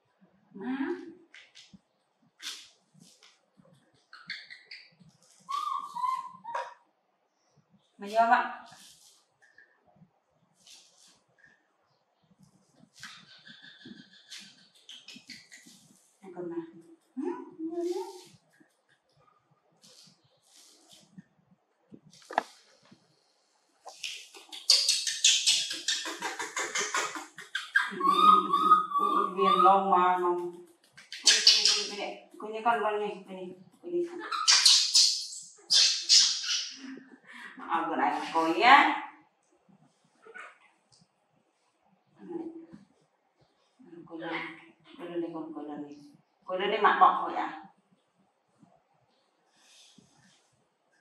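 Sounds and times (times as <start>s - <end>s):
baby monkey calling: 5.5s - 6.7s, 24.4s - 29.8s, 31.1s - 32.0s, 34.2s - 36.8s
person speaking: 16.2s - 18.3s, 22.2s - 22.5s.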